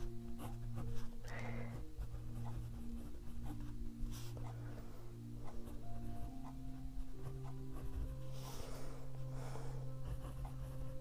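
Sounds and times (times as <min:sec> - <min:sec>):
fountain pen writing on paper: 0:00.1 - 0:01.1, 0:01.7 - 0:04.6, 0:05.4 - 0:08.4, 0:10.0 - 0:11.0.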